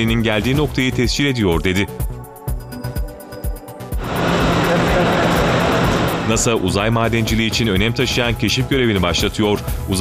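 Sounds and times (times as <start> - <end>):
rushing whoosh with low hum: 4.0 - 7.0.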